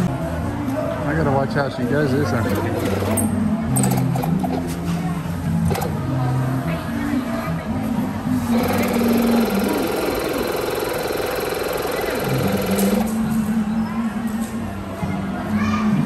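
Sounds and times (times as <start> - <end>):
electric air pump running: 8.5 - 13.3.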